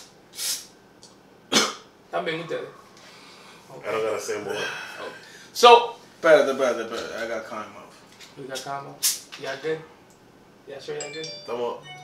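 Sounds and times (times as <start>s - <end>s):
man coughing: 1.5s - 1.9s.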